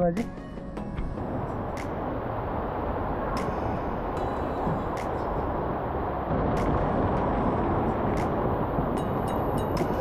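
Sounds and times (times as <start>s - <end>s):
waterfall rushing: 1.2s - 10.0s.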